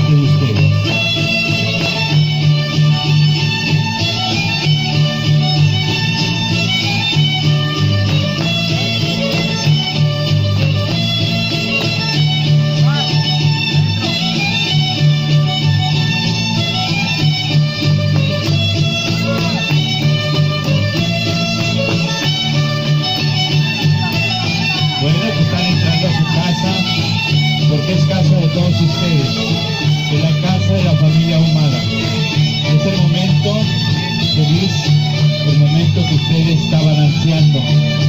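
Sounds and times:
strummed guitars: 0:00.0 - 0:38.0
violin: 0:00.0 - 0:38.0.

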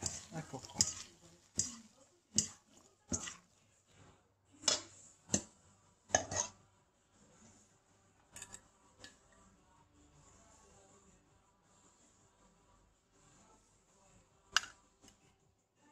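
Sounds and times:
utensils clinking on metal bowl: 0:00.0 - 0:03.5, 0:06.2 - 0:06.5.

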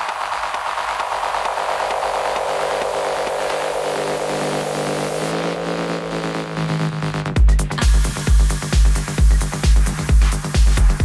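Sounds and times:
white-noise hiss: 0:00.0 - 0:05.3
buzzing synth chord: 0:02.6 - 0:10.4.

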